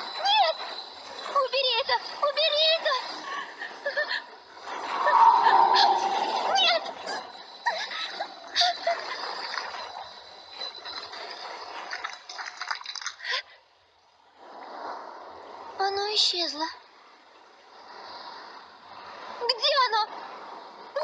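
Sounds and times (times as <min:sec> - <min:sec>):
water swirling and splashing effects: 0:04.6 - 0:07.4.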